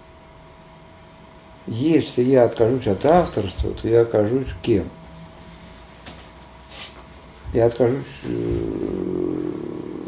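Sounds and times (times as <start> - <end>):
man's drawn-out hesitation sound: 7.5 - 9.8.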